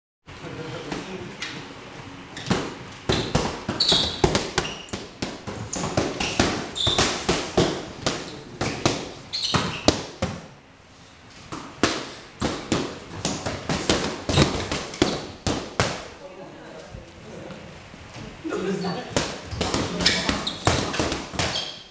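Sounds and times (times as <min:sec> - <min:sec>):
boxing gloves smacking mitts: 0:02.4 - 0:10.5, 0:11.5 - 0:16.1, 0:19.1 - 0:21.7.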